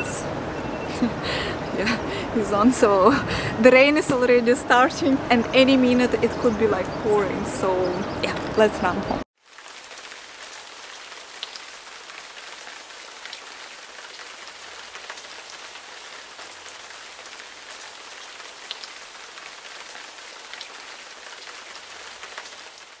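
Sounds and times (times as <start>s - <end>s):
heavy rain falling: 8.2s - 23.0s.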